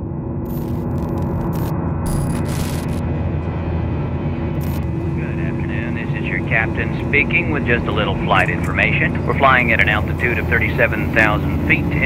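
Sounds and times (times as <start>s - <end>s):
airliner cabin engine drone: 0.0s - 12.0s
glitchy static hiss bursts: 0.5s - 3.0s.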